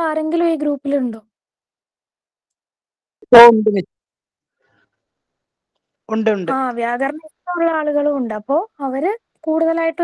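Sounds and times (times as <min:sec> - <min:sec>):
woman's voice: 0:06.5 - 0:10.0.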